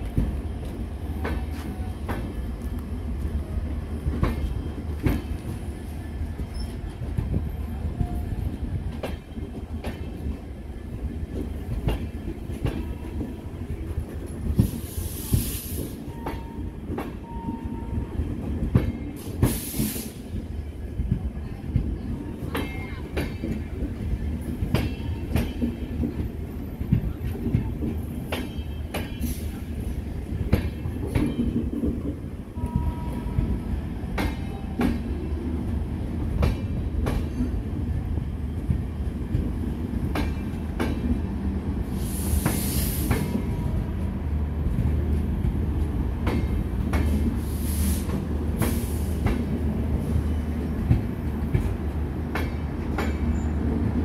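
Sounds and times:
train wheels clicking over rail joints: 0:00.0 - 0:03.3, 0:04.0 - 0:17.6, 0:18.4 - 0:32.8, 0:33.4 - 0:35.2, 0:36.2 - 0:37.8, 0:38.6 - 0:41.3, 0:44.7 - 0:54.0
train rumble: 0:00.0 - 0:54.0
high hiss bursts: 0:19.2 - 0:20.3, 0:41.9 - 0:43.3.

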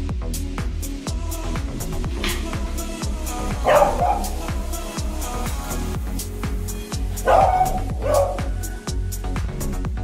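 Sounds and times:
background music with beat: 0:00.0 - 0:10.0
dog barking: 0:03.6 - 0:04.5, 0:07.2 - 0:08.6.

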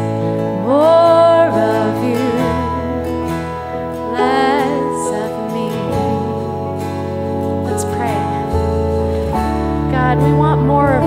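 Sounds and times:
worship band playing: 0:00.0 - 0:10.7
woman singing: 0:00.5 - 0:06.9, 0:07.6 - 0:08.5, 0:09.8 - 0:11.0.

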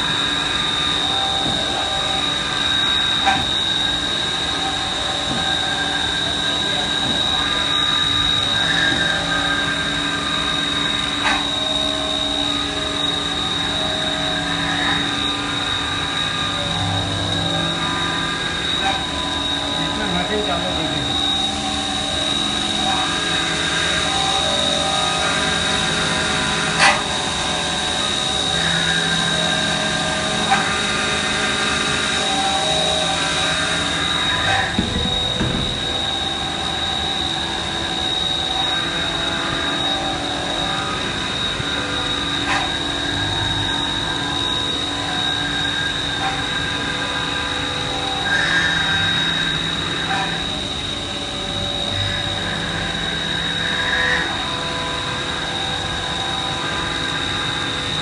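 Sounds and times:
high machine whine: 0:00.0 - 0:58.0
machine hums: 0:00.0 - 0:58.0.

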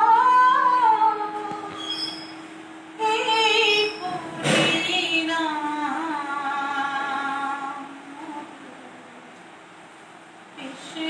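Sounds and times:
woman singing: 0:00.0 - 0:02.2, 0:03.0 - 0:09.4, 0:10.6 - 0:11.0
steady low hum: 0:00.0 - 0:11.0.

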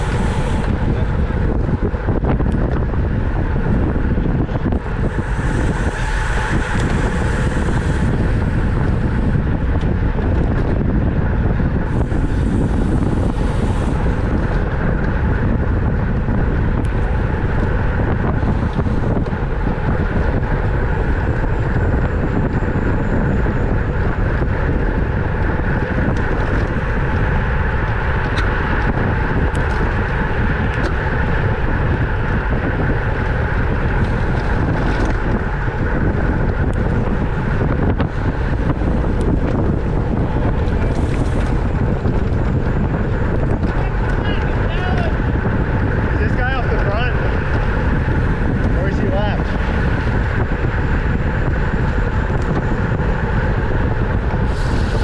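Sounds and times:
wind noise on microphone: 0:00.0 - 0:55.0.

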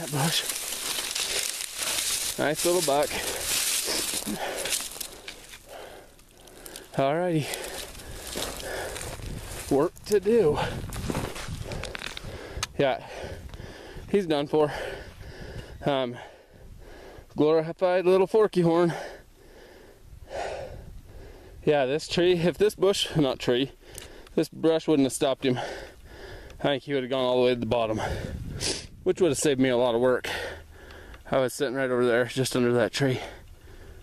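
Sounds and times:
man breathing: 0:00.0 - 0:09.7, 0:10.3 - 0:17.3, 0:18.9 - 0:21.6, 0:23.8 - 0:24.4, 0:25.6 - 0:26.6, 0:28.0 - 0:29.0, 0:30.3 - 0:31.3, 0:33.2 - 0:34.0
crunchy handling noise: 0:00.0 - 0:12.7
footsteps through dry brush: 0:00.0 - 0:13.3.

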